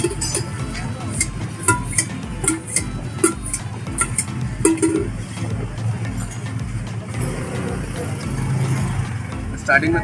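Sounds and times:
vehicle engines humming: 0.0s - 10.0s.

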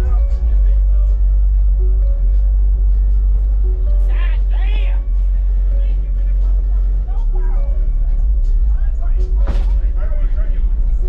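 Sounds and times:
rap music with deep bass: 0.0s - 11.0s.

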